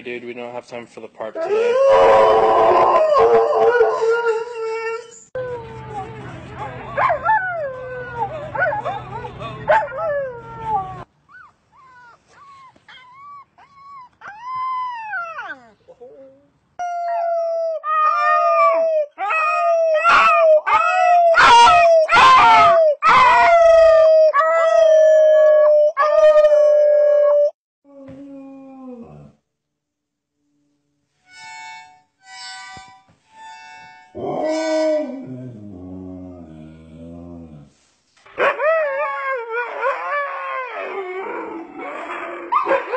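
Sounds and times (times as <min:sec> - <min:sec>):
dogs howling and whining: 0:01.4 - 0:06.2, 0:12.0 - 0:29.3, 0:38.4 - 0:42.9.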